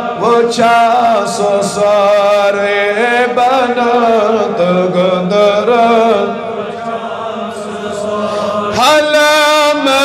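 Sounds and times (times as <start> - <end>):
man chanting unaccompanied: 0.0 - 10.0.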